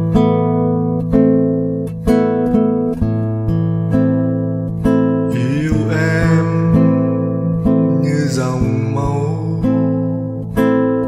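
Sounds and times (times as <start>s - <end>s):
acoustic guitar chords ringing: 0.0s - 11.0s.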